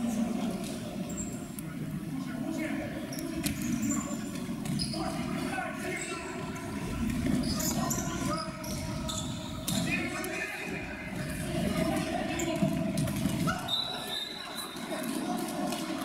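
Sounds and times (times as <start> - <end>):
players calling and shouting: 0.0 - 16.0.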